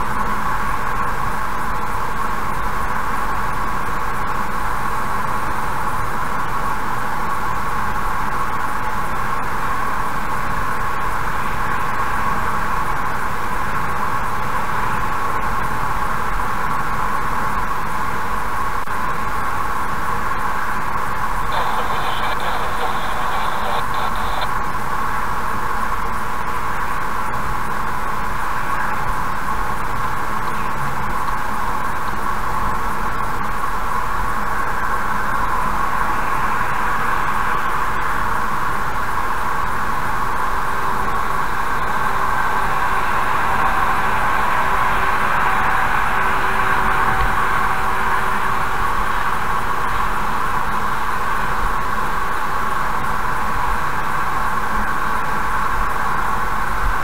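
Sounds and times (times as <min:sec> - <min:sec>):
car road and tyre noise: 0:00.0 - 0:57.0.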